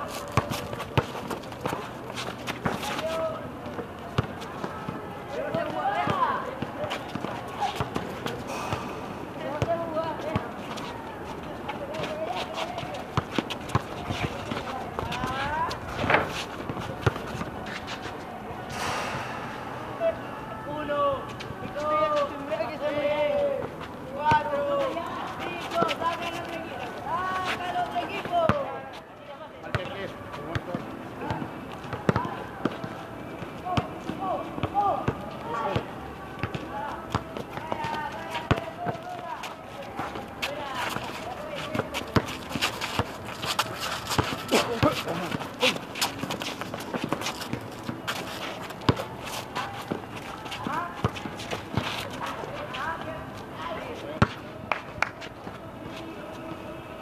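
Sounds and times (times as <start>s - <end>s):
basketball bouncing on pavement: 34.6s - 39.2s, 40.9s - 48.2s.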